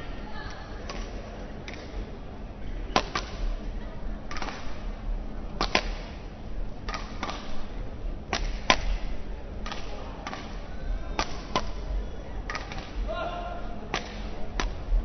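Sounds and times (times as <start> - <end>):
rackets striking shuttlecock: 2.9 - 3.5, 4.3 - 4.8, 5.6 - 6.2, 6.8 - 7.7, 8.3 - 13.1, 13.9 - 15.0.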